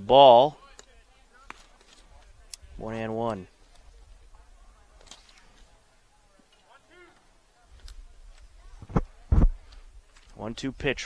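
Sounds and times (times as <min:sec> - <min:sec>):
outdoor ballfield ambience: 0:00.0 - 0:11.0
distant shout: 0:06.7 - 0:07.4.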